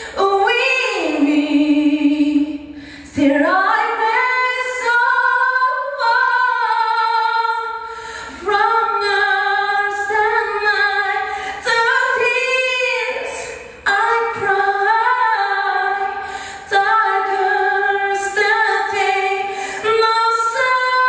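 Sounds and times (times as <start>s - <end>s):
woman singing a cappella: 0.0s - 21.0s
woman breathing: 2.7s - 3.2s, 7.8s - 8.4s, 11.3s - 11.6s, 16.2s - 16.7s, 19.4s - 19.9s.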